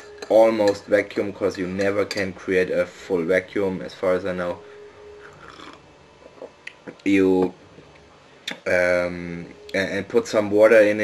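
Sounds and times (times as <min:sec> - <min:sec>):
spoon clinking on ceramic mug: 0:01.8 - 0:02.3.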